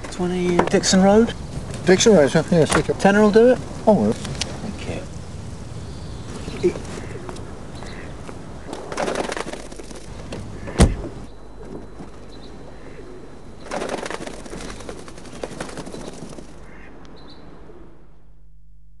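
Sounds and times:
birds calling: 0.0 - 18.0
rustling noise: 6.2 - 12.4
sharp thump: 10.7 - 11.2.

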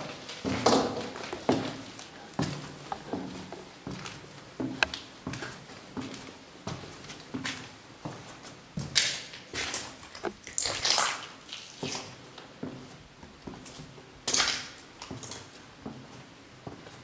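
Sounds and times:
footsteps on gritty concrete stairs: 0.0 - 10.4.

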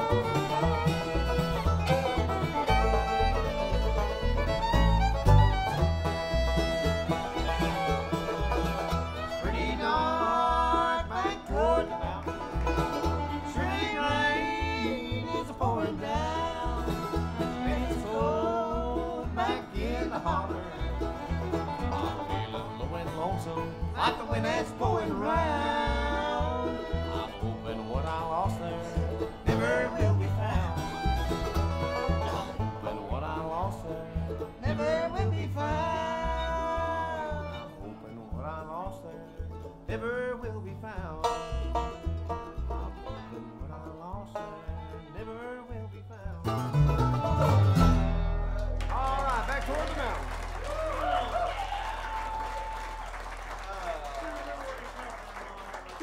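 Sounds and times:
pulsing bass line: 0.0 - 48.9
bluegrass band playing: 0.0 - 56.0.

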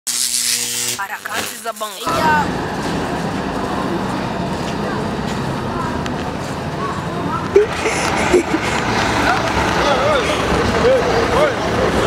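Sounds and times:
buzzing tone with hiss: 0.1 - 2.5
faint distant voices: 2.1 - 12.0.

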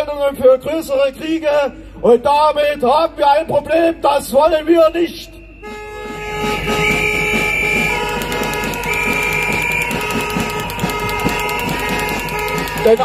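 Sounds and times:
horns blowing long tones: 4.6 - 13.0
fast clatter: 6.8 - 13.0.

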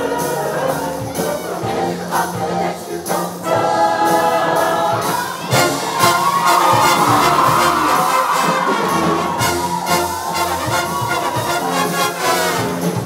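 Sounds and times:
choir singing in harmony: 0.0 - 13.0
instrumental backing with drum beat: 0.0 - 13.0.

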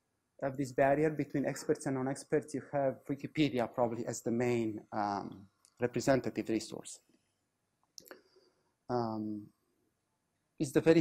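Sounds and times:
man lecturing: 0.4 - 7.0, 8.9 - 9.5, 10.6 - 11.0.

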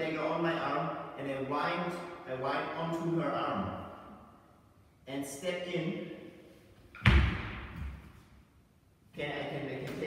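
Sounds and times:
foot stamping on hall floor: 7.0 - 8.3.

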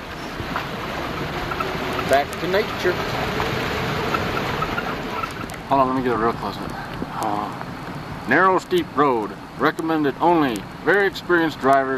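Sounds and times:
vehicle engine: 0.0 - 11.9.

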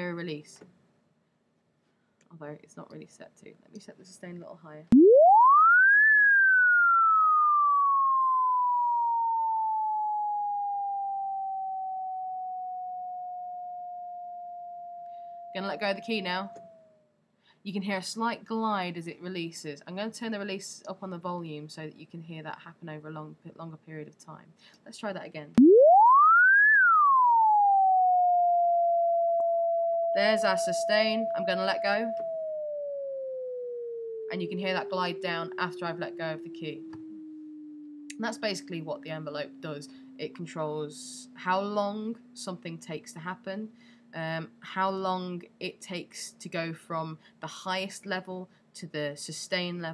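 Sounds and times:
synthesizer tone gliding in pitch: 4.9 - 16.8, 25.6 - 44.8.

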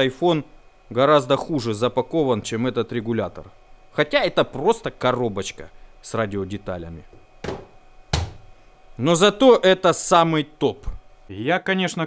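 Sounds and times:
cardboard box knocking on wood: 7.4 - 8.4.

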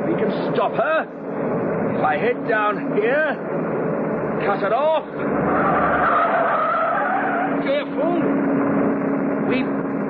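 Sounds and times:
engine hum: 0.0 - 10.0
car tyres squealing: 2.2 - 10.0.

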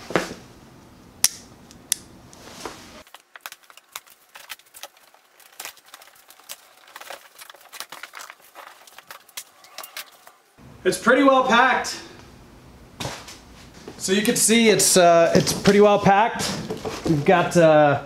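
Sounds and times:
cardboard box clicks and rustles: 3.0 - 9.4.

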